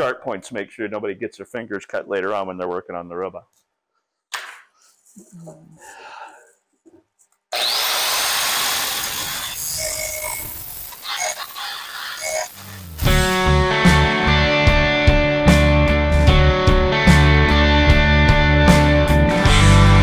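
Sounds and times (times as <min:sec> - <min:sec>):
angle grinder grinding metal: 0:07.5 - 0:13.5
rock music with guitar: 0:12.9 - 0:20.0.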